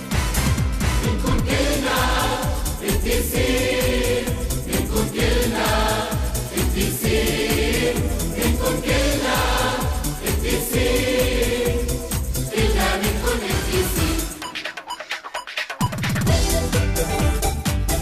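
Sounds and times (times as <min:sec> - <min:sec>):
backing track with steady beat: 0:00.0 - 0:18.0
children's voices singing a hymn: 0:01.1 - 0:02.4.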